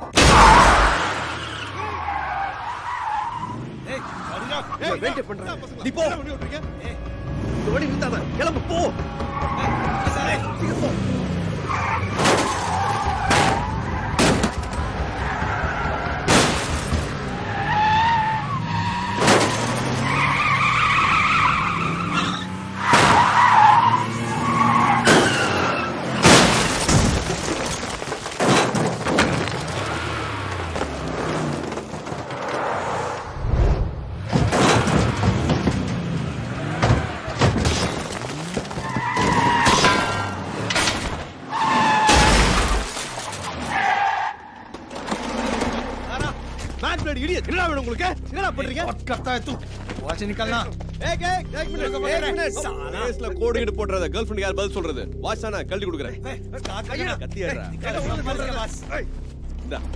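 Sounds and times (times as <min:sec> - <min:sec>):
car engines revving: 0:00.0 - 0:27.3, 0:28.3 - 0:59.9
tyres skidding and squealing: 0:00.0 - 0:59.9
sharp crashes: 0:16.2 - 0:17.1
background music: 0:45.8 - 0:59.9.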